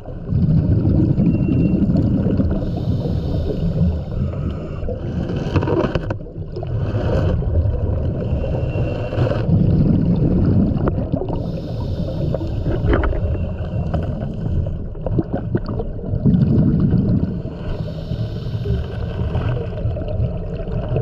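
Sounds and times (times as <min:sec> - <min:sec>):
low rumble of moving water: 0:00.0 - 0:21.0
regulator bubbling hiss: 0:09.8 - 0:19.2.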